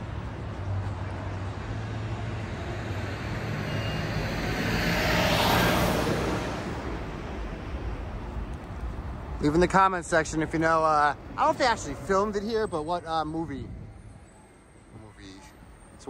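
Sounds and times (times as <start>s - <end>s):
vehicle driving past: 0.6s - 7.6s.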